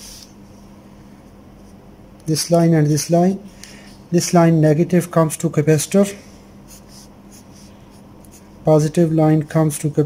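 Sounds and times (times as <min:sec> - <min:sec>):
pencil scratching on paper: 0:06.7 - 0:08.5.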